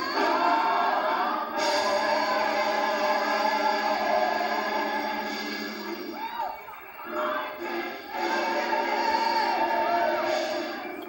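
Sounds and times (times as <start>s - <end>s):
gospel choir singing through tv speaker: 0.0s - 11.0s.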